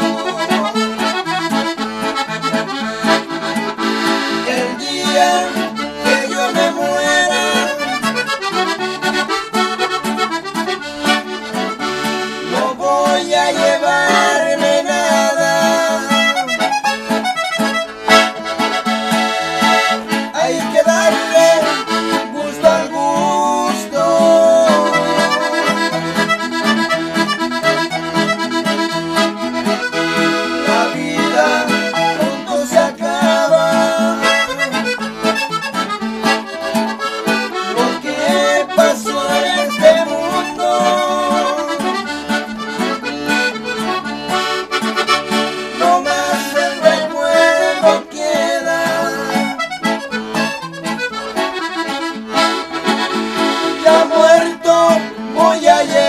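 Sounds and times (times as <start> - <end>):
piano accordion melody: 0.0 - 56.0
strummed acoustic guitar: 0.0 - 56.0
men singing together: 4.4 - 7.9, 12.5 - 16.4, 20.3 - 25.9, 30.6 - 34.7, 37.7 - 41.9, 45.8 - 49.6, 53.8 - 56.0.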